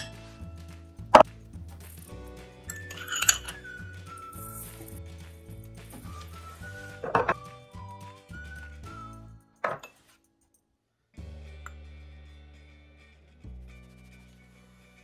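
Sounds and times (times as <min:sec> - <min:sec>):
background music: 0:00.0 - 0:10.6, 0:11.2 - 0:15.0
teaspoon clinking on metal bowl: 0:02.7 - 0:03.6.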